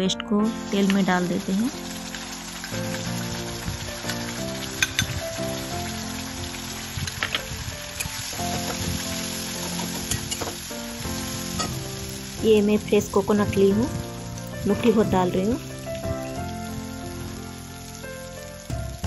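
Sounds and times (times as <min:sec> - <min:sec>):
spice paste sizzling in oil: 0:00.5 - 0:19.0.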